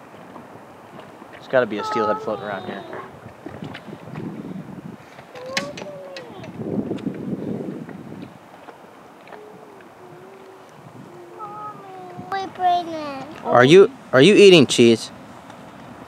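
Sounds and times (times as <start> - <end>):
river water lapping: 0.0 - 14.2
wind on microphone: 1.8 - 13.5.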